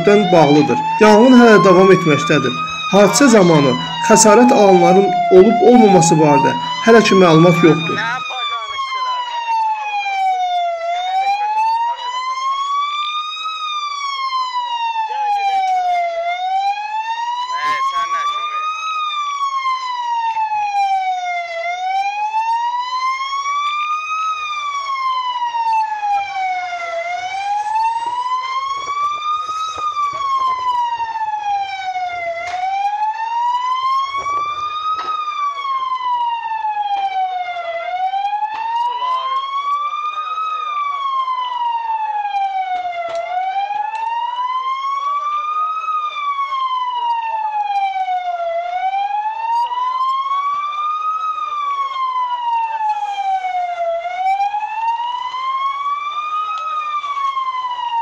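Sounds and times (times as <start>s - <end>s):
siren wailing: 0.0s - 58.0s.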